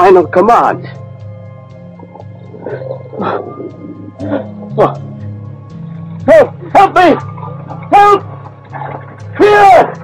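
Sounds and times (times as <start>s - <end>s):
sustained low music: 0.0s - 10.0s.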